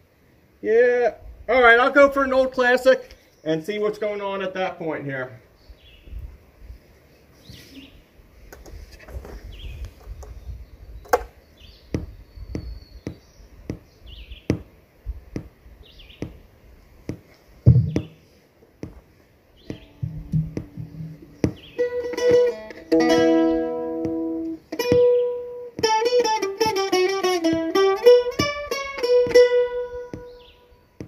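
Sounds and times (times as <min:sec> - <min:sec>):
bird chirping: 0:05.5 - 0:06.2, 0:09.4 - 0:14.7, 0:15.8 - 0:16.5, 0:17.6 - 0:18.4, 0:19.5 - 0:31.0
heavy thump: 0:11.9 - 0:13.8, 0:17.1 - 0:18.2, 0:18.8 - 0:30.5
gear knocking on wooden stage: 0:17.1 - 0:18.2, 0:19.7 - 0:30.5
plucked string notes: 0:19.7 - 0:30.7.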